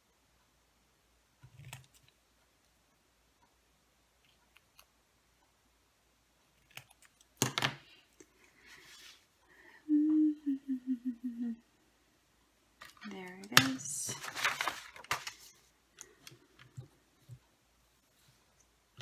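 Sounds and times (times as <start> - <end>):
person humming: 9.6 - 11.8
paper rustling: 12.8 - 16.4.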